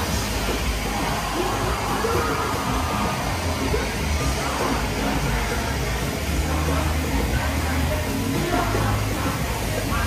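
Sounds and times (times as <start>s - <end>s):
crowd noise: 0.0s - 10.0s
loud stage music: 0.0s - 10.0s.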